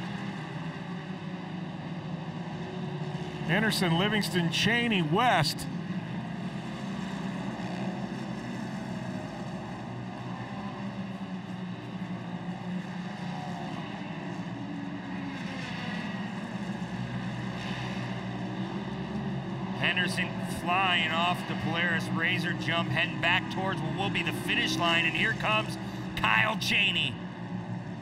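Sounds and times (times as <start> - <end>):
race car engines droning: 0.0 - 28.0.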